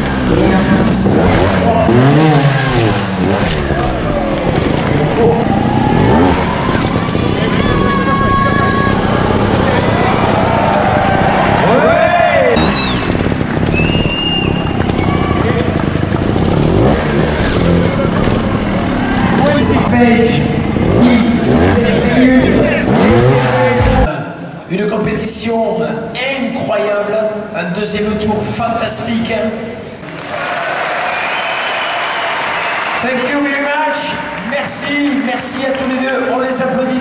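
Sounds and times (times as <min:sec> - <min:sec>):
motorcycle engine revving: 0:00.0 - 0:24.1
voice over loudspeakers: 0:19.4 - 0:24.4.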